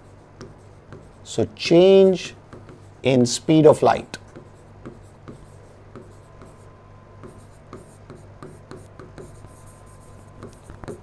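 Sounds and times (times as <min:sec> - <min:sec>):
faint hum: 0:00.0 - 0:11.0
stylus tapping and scratching: 0:02.5 - 0:02.9, 0:10.4 - 0:11.0.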